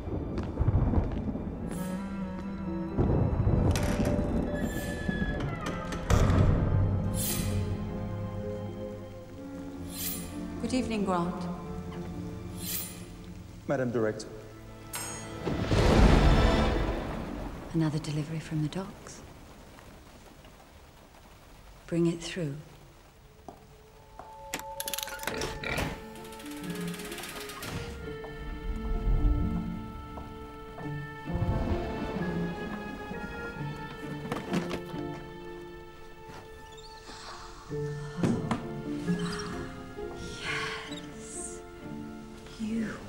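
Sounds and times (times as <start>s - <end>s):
wooden door creaking open: 3.1s - 7.7s, 24.4s - 28.5s, 33.9s - 37.3s.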